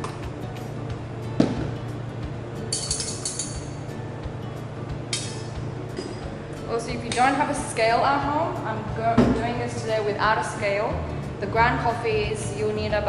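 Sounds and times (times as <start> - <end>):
background music: 0.0 - 13.0
metal kettles clinking and knocking: 2.7 - 3.7.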